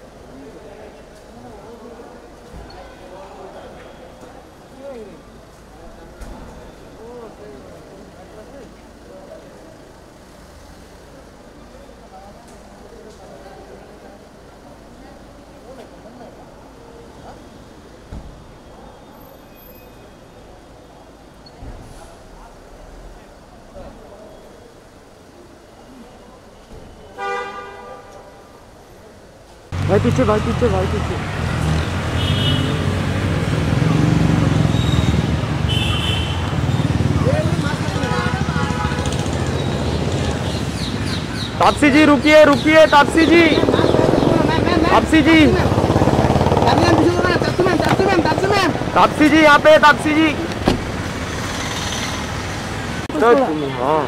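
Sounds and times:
voices in background: 0:00.0 - 0:31.5, 0:32.2 - 0:50.8, 0:53.0 - 0:54.0
street noise: 0:00.0 - 0:54.0.

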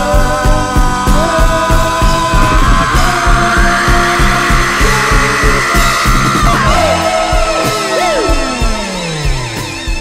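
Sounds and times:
instrumental song with steady beat: 0:00.0 - 0:10.0.

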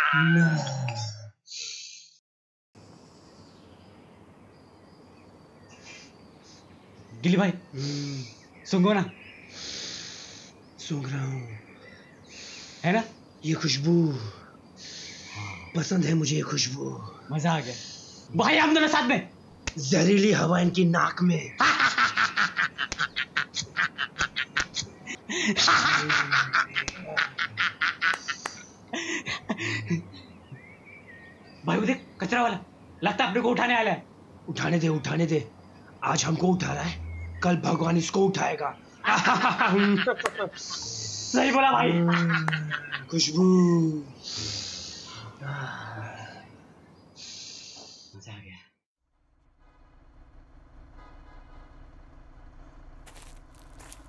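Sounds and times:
steady low hum: 0:02.8 - 0:41.4, 0:49.2 - 0:54.0
men laughing hard: 0:21.6 - 0:30.1, 0:39.0 - 0:40.8, 0:41.8 - 0:43.1
faint held tones: 0:36.4 - 0:38.2.

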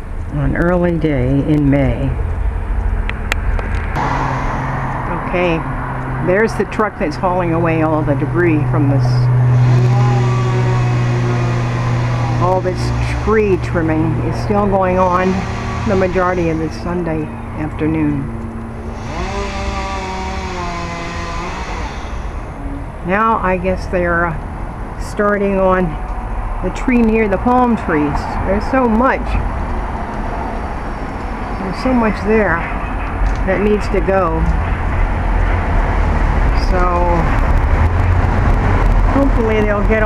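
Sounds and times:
road traffic rushing: 0:00.0 - 0:40.0
engine revving: 0:02.2 - 0:24.4, 0:25.0 - 0:40.0.

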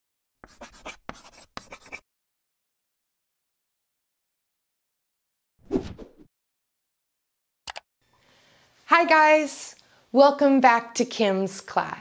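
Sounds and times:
chalk scratching on chalkboard: 0:00.4 - 0:02.0.

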